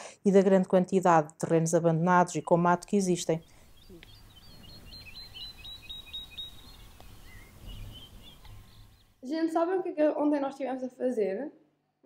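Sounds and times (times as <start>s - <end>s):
small bird chirping: 2.5s - 9.2s.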